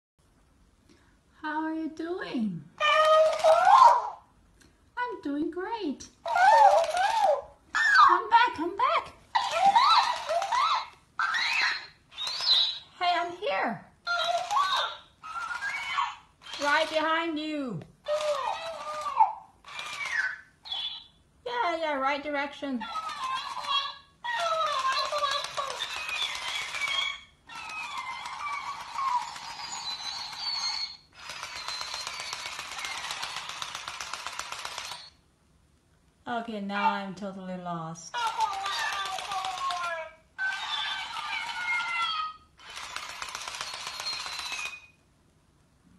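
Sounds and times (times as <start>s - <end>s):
toy playing squeaky speech: 2.8s - 4.2s, 6.2s - 13.3s, 14.1s - 21.7s, 22.7s - 35.1s, 38.1s - 44.9s.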